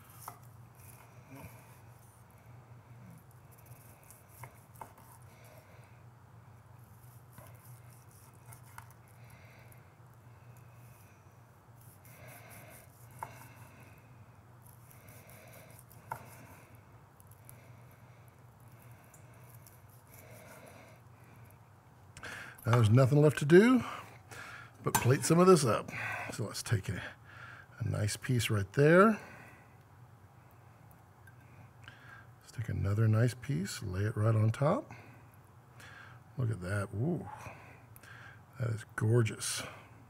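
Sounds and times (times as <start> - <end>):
low steady hum: 0.0 - 40.0
knife sawing through steak: 6.8 - 9.2, 11.8 - 13.7.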